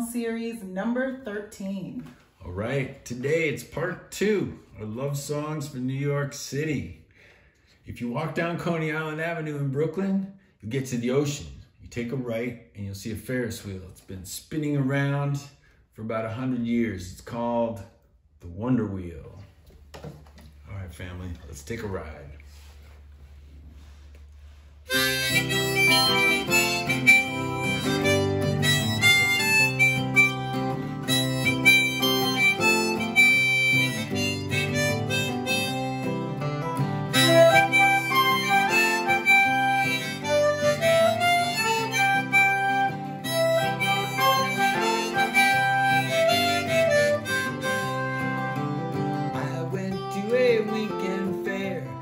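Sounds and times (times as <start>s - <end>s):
harmonica melody: 23.8s - 52.0s
strummed acoustic guitar: 24.9s - 52.0s.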